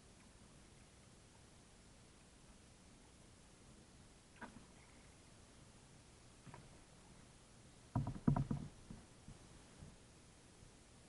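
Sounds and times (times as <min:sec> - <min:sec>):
knocks on a kayak: 0:07.9 - 0:09.0.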